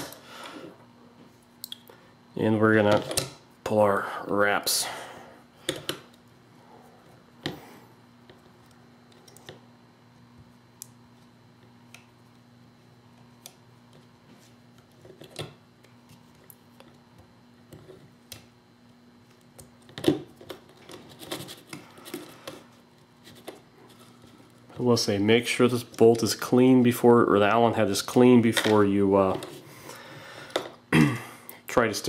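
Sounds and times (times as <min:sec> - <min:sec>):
faint steady hum: 0:00.0 - 0:32.0
hands clicking and tapping parts: 0:05.6 - 0:06.2.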